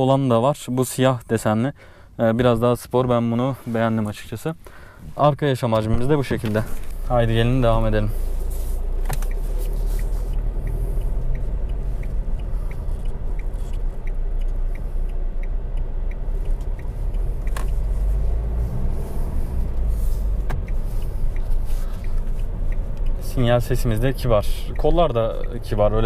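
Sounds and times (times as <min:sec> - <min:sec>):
road noise: 0:00.0 - 0:26.0
turn signal ticking: 0:00.0 - 0:26.0
diesel engine drone: 0:01.8 - 0:26.0.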